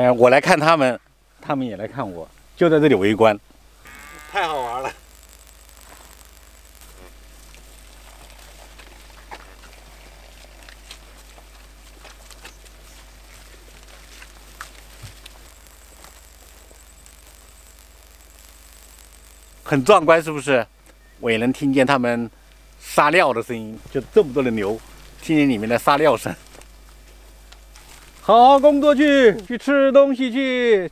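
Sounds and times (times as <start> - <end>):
cows urinating splashing: 7.4 - 15.4
animals clicking and rustling: 7.4 - 16.2.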